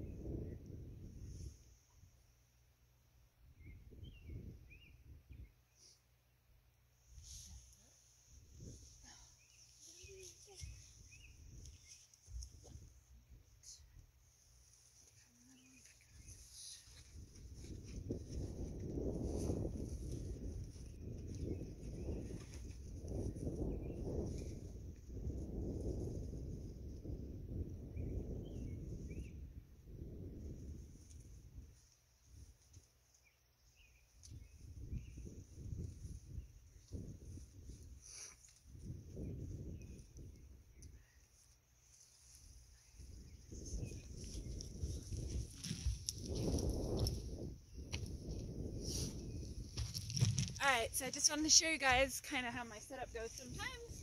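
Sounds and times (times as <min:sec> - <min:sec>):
wind buffeting microphone: 0:00.0 - 0:01.6, 0:03.6 - 0:05.5, 0:08.3 - 0:13.5, 0:16.1 - 0:32.5, 0:33.8 - 0:38.0, 0:38.6 - 0:41.2, 0:42.3 - 0:54.0.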